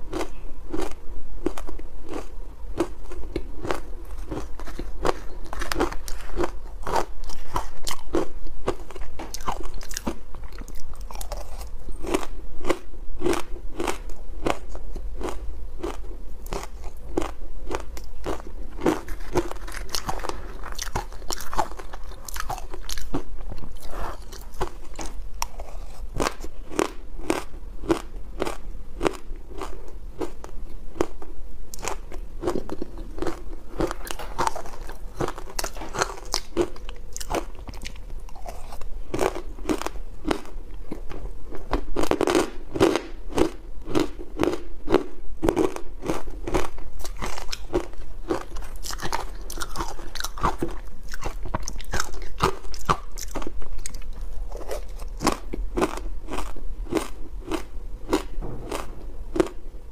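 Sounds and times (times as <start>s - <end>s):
ice being chewed: 0.1s - 59.6s.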